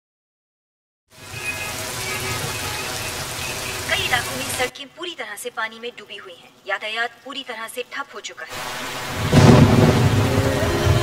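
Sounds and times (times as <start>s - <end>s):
heavy rain falling: 1.1s - 4.7s, 8.5s - 11.0s
person speaking: 3.9s - 8.6s.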